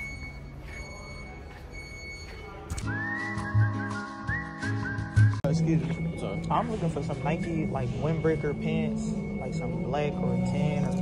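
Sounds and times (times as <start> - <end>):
whistled tune: 0.0 - 11.0
bass line: 2.8 - 11.0.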